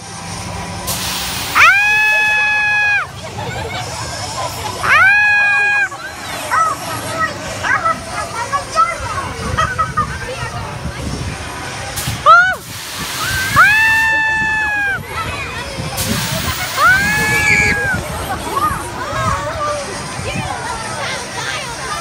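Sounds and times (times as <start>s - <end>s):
crowd chatter: 0.0s - 22.0s
burst of hiss: 0.9s - 2.2s, 11.9s - 14.1s, 16.0s - 17.6s
riders screaming: 1.5s - 3.1s, 4.8s - 6.9s, 13.2s - 15.2s, 16.7s - 18.0s.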